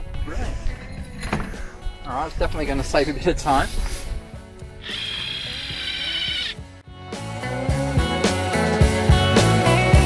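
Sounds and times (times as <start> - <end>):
background music: 0.0 - 10.0
cordless drill whirring: 4.8 - 6.6.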